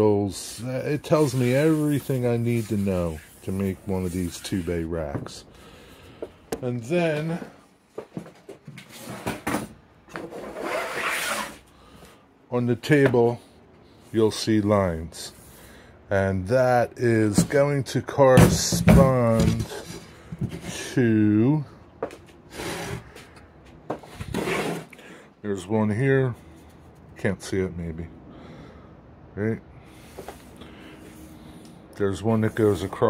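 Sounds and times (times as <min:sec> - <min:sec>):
wooden block scraping on wood: 0:00.6 - 0:05.3, 0:10.1 - 0:11.6, 0:18.8 - 0:20.9, 0:22.0 - 0:25.0, 0:32.2 - 0:33.0
metal scraping across wooden table: 0:22.5 - 0:23.3, 0:24.0 - 0:25.0.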